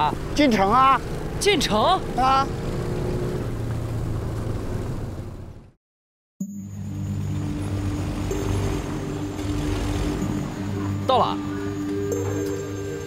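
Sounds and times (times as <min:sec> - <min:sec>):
small motorcycle engine running: 0:00.0 - 0:05.7, 0:06.7 - 0:13.0
steady low drone: 0:06.6 - 0:13.0.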